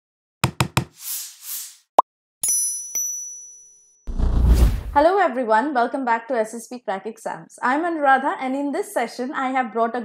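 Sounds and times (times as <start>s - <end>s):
sharp knocks: 0.4s - 1.0s
bright bell-like chime: 2.4s - 4.1s.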